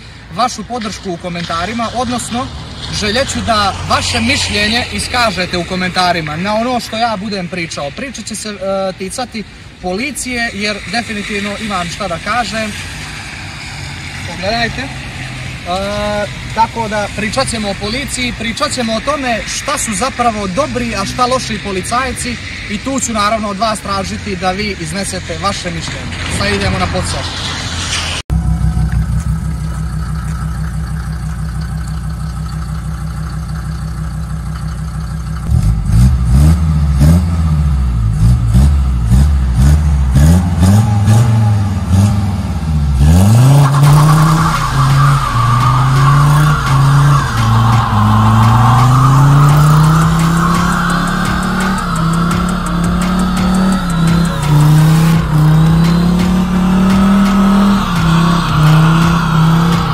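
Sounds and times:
car engine revving: 0:00.0 - 0:59.9
tyre squeal on wet asphalt: 0:00.4 - 0:36.1, 0:38.2 - 0:59.9.

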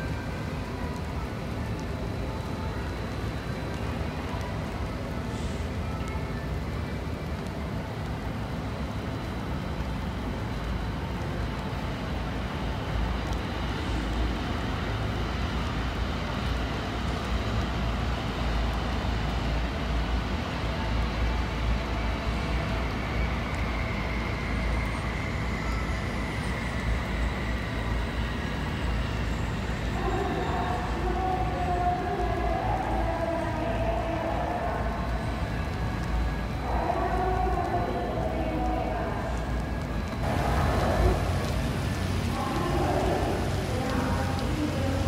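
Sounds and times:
faint high whine: 0:00.0 - 0:45.0
rail and road traffic rumble: 0:00.0 - 0:45.0.

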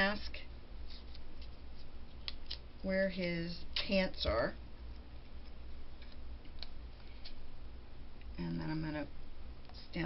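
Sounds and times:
low steady hum: 0:00.0 - 0:10.0
light ticks of handling paper: 0:00.8 - 0:02.6.

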